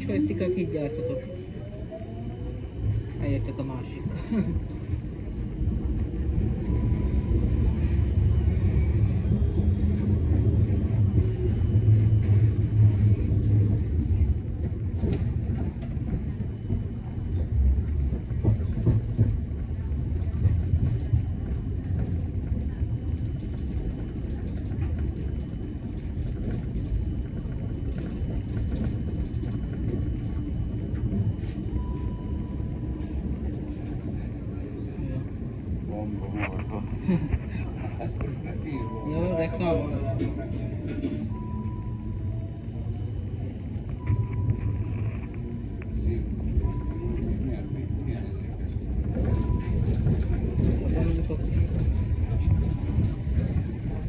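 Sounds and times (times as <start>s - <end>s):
tram rumbling on rails: 0.0s - 54.0s.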